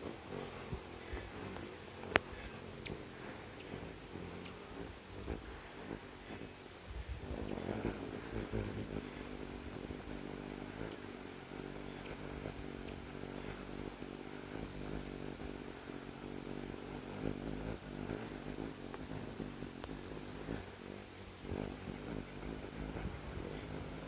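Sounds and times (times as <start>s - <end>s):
hummingbird wings humming: 0.0s - 24.0s.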